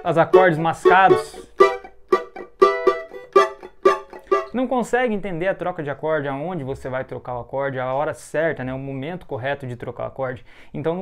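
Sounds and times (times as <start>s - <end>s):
cavaquinho strumming: 0.0s - 5.3s.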